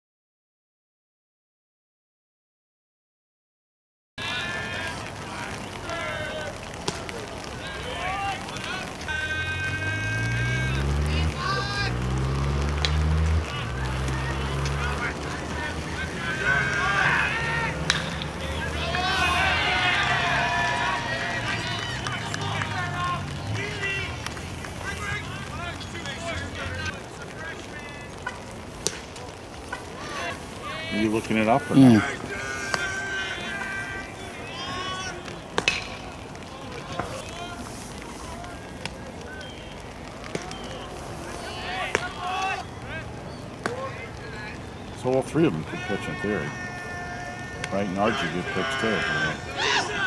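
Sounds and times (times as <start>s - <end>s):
voices shouting: 4.2s - 50.0s.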